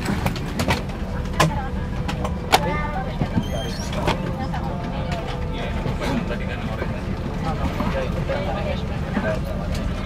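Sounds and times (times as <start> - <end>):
airliner cabin rumble: 0.0 - 10.0
faint passenger voices: 0.0 - 10.0.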